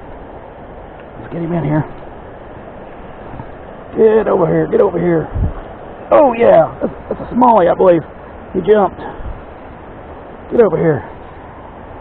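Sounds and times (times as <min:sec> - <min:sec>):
rushing river water: 0:00.0 - 0:12.0
wind on microphone: 0:01.9 - 0:03.8, 0:05.1 - 0:06.4, 0:09.0 - 0:09.6.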